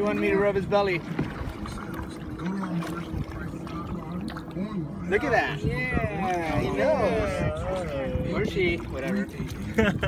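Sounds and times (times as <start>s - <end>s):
water sloshing against boat: 0.0s - 10.0s.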